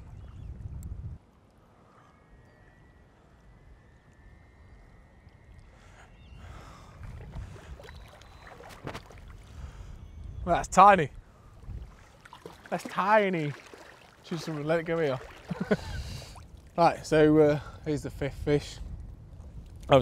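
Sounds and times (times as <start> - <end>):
wind buffeting microphone: 0.0 - 1.4, 2.3 - 20.0
water lapping and splashing: 5.6 - 10.0, 11.3 - 20.0.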